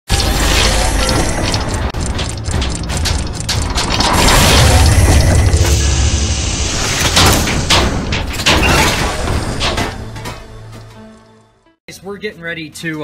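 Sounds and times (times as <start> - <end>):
deep rumble: 0.1 - 10.2
loud hits: 0.1 - 10.7
metallic clanks: 0.2 - 11.0
background music: 9.2 - 13.0.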